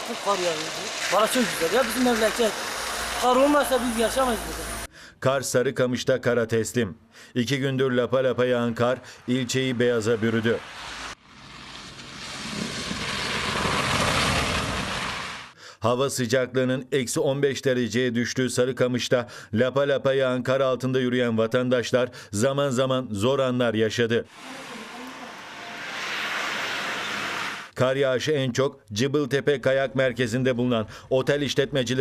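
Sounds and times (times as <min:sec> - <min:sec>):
car tyres hissing through slush: 0:00.0 - 0:04.9, 0:10.0 - 0:15.6, 0:24.4 - 0:27.7
outdoor rushing noise: 0:08.7 - 0:15.6.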